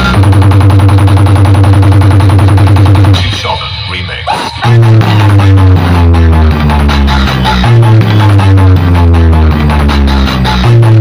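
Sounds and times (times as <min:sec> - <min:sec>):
bass-heavy dance music: 0:00.0 - 0:11.0.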